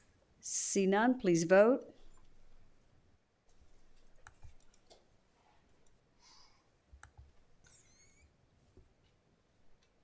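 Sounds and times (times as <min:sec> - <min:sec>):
soft rustle: 0:03.4 - 0:06.0.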